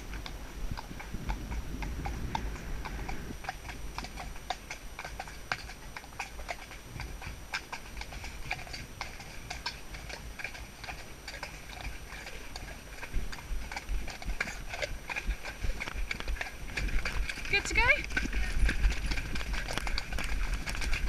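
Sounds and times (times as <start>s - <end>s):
low rumble: 0.0s - 4.0s, 6.8s - 21.0s
hooves clip-clopping: 0.0s - 21.0s.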